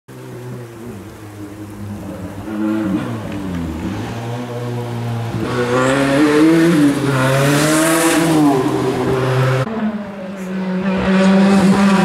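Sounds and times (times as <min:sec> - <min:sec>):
rally car engine revving: 0:00.1 - 0:12.0.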